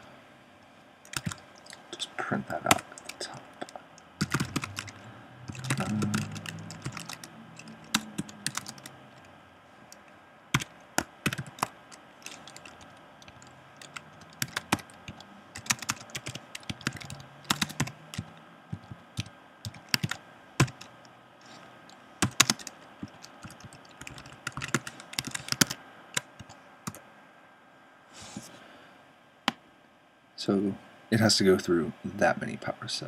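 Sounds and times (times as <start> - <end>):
computer keyboard typing: 1.0 - 9.3, 9.9 - 21.0, 21.9 - 27.0.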